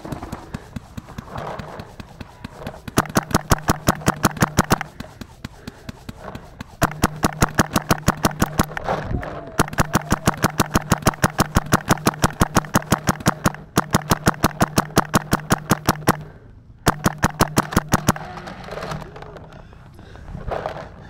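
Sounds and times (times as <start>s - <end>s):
paintball marker rapid firing: 0.0s - 19.5s
steady low hum: 0.0s - 21.0s.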